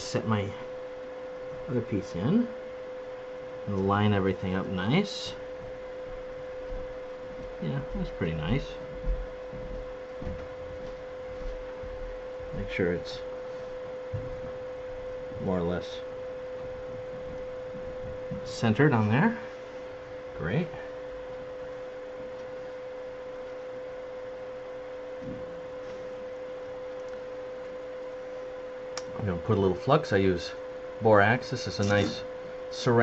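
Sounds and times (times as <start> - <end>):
electrical hum: 0.0 - 33.0.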